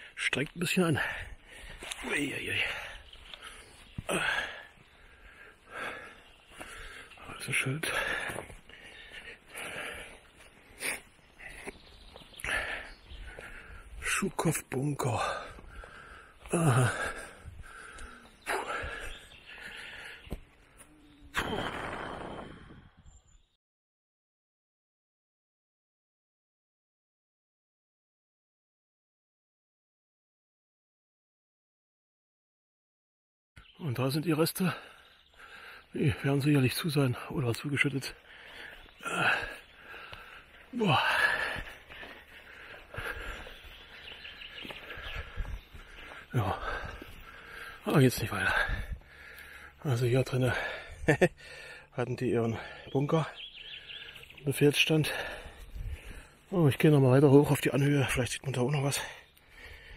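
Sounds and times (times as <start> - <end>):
birds calling: 0.0 - 23.6, 33.6 - 59.9
footsteps on dirt path: 1.0 - 22.7, 34.7 - 49.8, 53.4 - 59.9.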